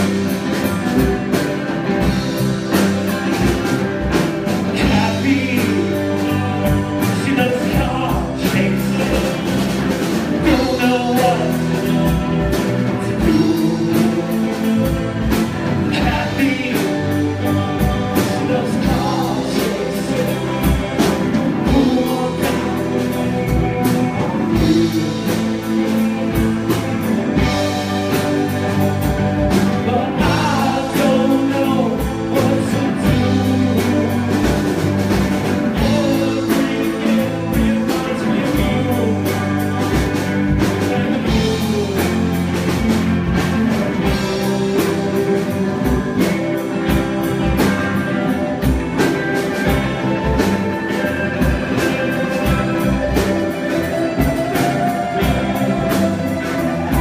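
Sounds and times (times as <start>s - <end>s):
drum kit: 0.0s - 57.0s
electric guitars: 0.0s - 57.0s
singer singing into microphone: 4.7s - 15.0s, 15.8s - 26.0s, 29.5s - 42.6s.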